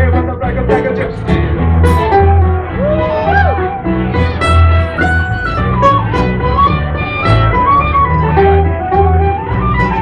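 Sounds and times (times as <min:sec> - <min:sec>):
steady low notes: 0:00.0 - 0:10.0
strummed guitars: 0:00.0 - 0:10.0
tin whistle melody: 0:01.8 - 0:10.0.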